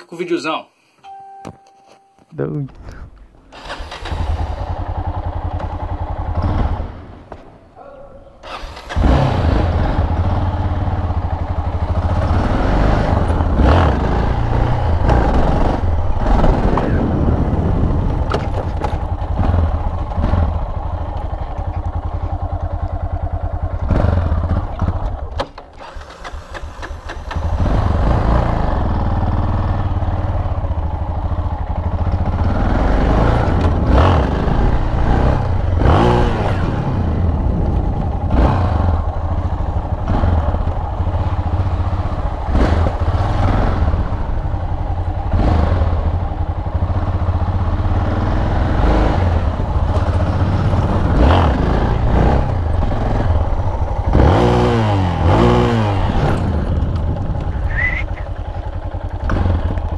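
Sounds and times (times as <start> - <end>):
motorcycle engine revving: 3.5 - 59.9.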